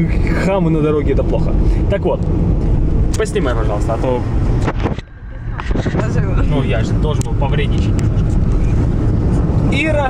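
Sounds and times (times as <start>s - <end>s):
car interior rumble: 0.0s - 10.0s
people talking: 3.2s - 4.3s, 5.5s - 8.0s, 9.7s - 10.0s.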